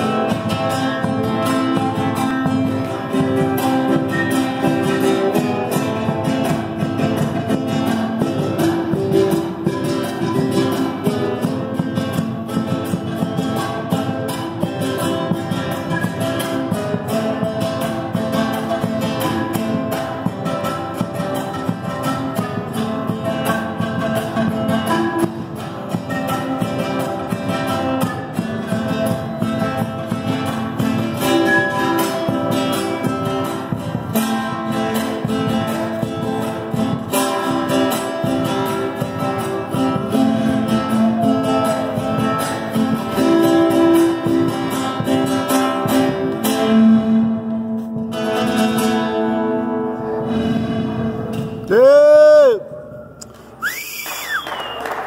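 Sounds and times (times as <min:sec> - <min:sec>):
strummed guitar: 0:00.0 - 0:53.6.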